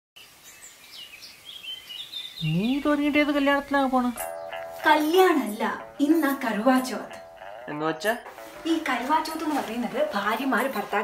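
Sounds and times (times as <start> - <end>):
low background hiss: 0.2 - 11.0
faint bird chirps: 0.3 - 3.2.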